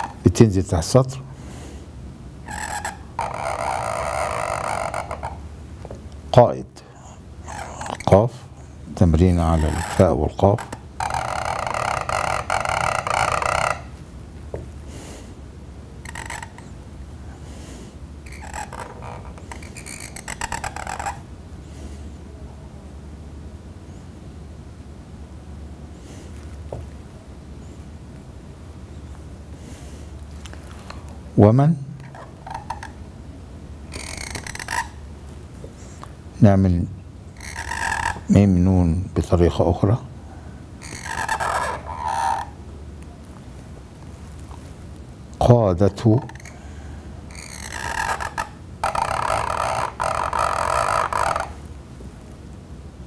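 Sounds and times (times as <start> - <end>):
pen scratching across paper: 2.5 - 5.4, 9.4 - 13.8, 18.3 - 21.2, 40.9 - 42.4.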